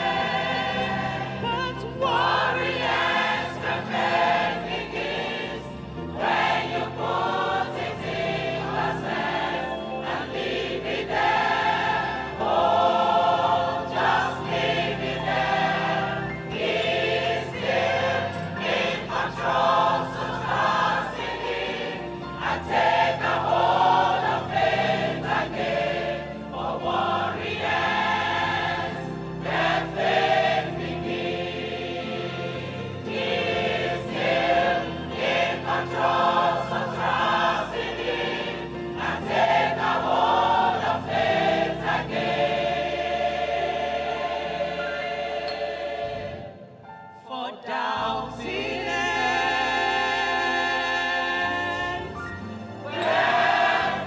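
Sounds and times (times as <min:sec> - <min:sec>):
congregation singing a hymn: 0:00.0 - 0:54.0.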